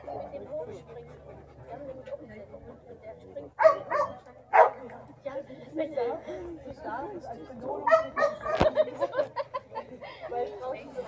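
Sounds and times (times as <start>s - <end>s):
low background talk: 0.0s - 11.0s
dog barking: 3.6s - 4.8s, 7.8s - 8.7s.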